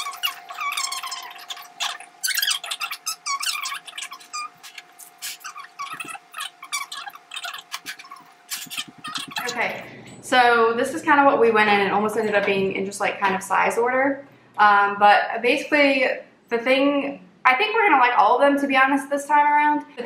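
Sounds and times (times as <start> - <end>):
faint steady hum: 0.0 - 20.0.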